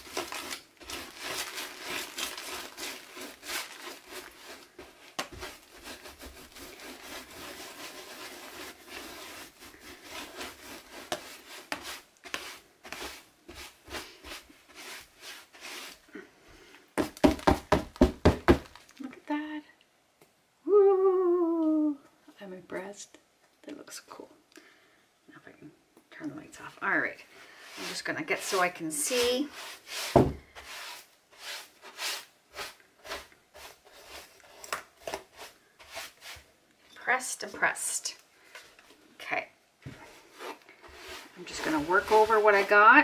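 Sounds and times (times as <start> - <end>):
brush sweeping glitter and glass: 0.0 - 16.0, 27.6 - 34.6, 35.3 - 37.9, 40.2 - 43.0.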